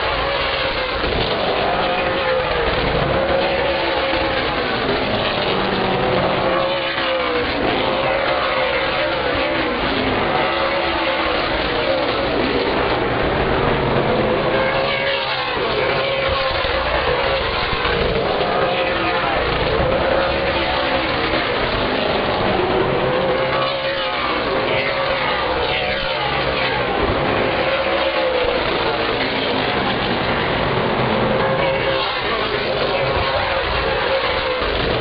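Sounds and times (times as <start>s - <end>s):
race car engines passing: 0.0s - 35.0s.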